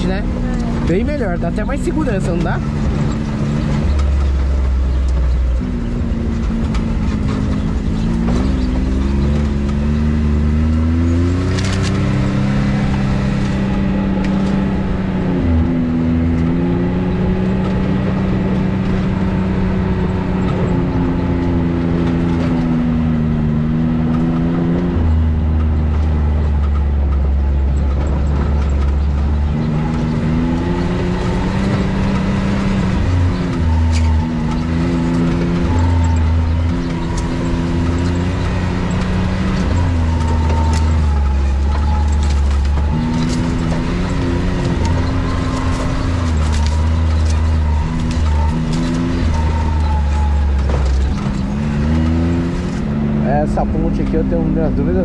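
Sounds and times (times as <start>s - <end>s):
vehicle engine revving under load: 0.0s - 55.0s.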